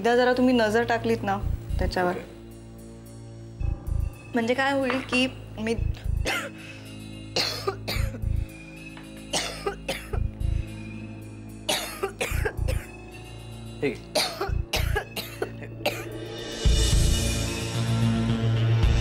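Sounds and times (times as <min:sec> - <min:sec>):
background music: 0:00.0 - 0:19.0
woman coughing: 0:06.2 - 0:06.6, 0:07.3 - 0:08.3, 0:09.3 - 0:10.3, 0:11.7 - 0:13.0, 0:14.2 - 0:16.2.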